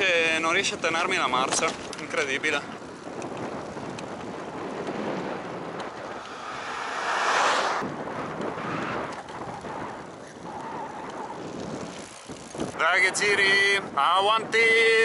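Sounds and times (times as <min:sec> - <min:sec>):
wind rushing over microphone: 0:00.0 - 0:15.0
pickup truck passing: 0:05.8 - 0:07.9.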